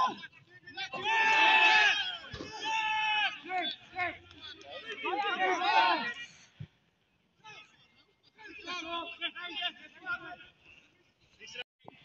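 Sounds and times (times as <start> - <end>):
voices shouting long calls: 0.0 - 6.4.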